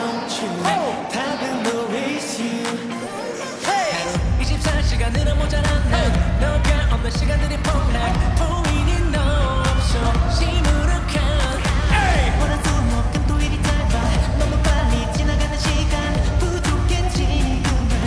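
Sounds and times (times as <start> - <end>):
male group vocals: 0.0 - 18.0
upbeat pop track: 0.0 - 18.0.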